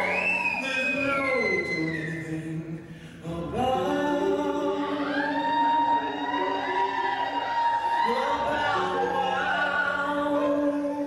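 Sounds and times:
musical accompaniment: 0:00.0 - 0:11.0.

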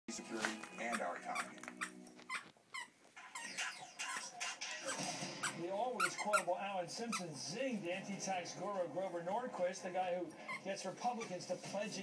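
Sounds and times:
dog vocalizing: 0:03.3 - 0:05.0.

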